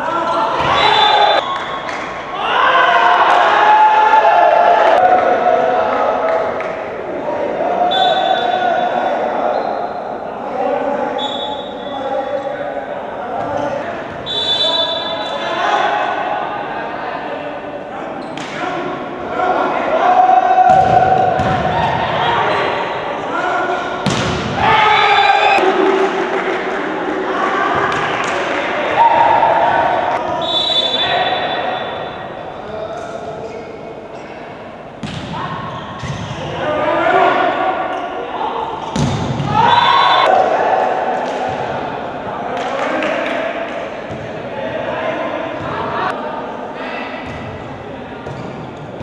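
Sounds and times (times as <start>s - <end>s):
players shouting: 0.0s - 32.4s, 35.3s - 43.4s
volleyball struck and bouncing: 24.0s - 24.6s, 38.9s - 39.6s.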